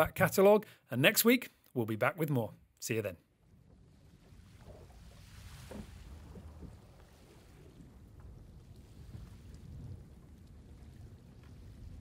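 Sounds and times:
wind: 0.0s - 12.0s
rushing water: 3.6s - 12.0s.

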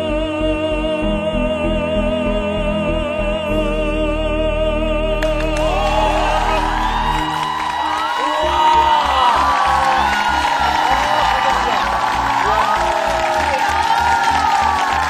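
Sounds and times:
audience applauding and cheering: 5.2s - 15.0s.

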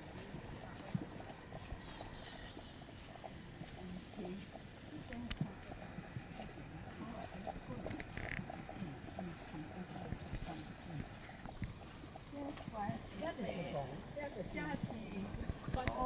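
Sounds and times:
background voices talking: 0.0s - 16.0s.

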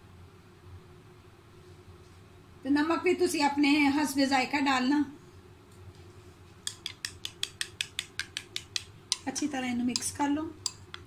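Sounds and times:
spoon clinking against ceramic bowl: 6.7s - 11.0s.

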